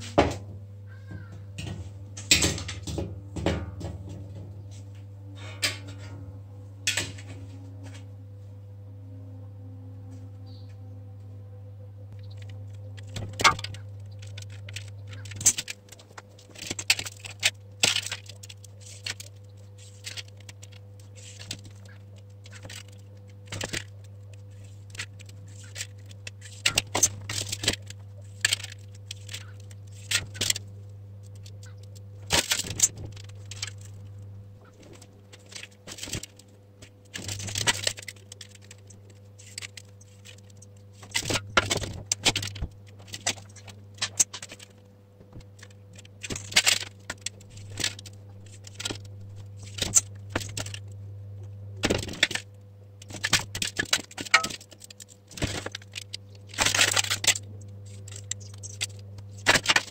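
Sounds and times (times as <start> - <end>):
steady low hum: 0.0 - 59.9.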